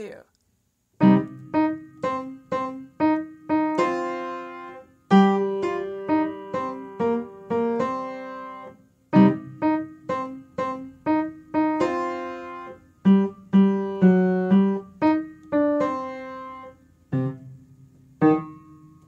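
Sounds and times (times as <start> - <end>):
jazz piano chords: 1.0 - 19.0.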